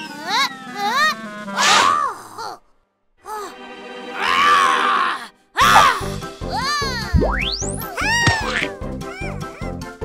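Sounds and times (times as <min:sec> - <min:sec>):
background music: 0:03.2 - 0:10.0.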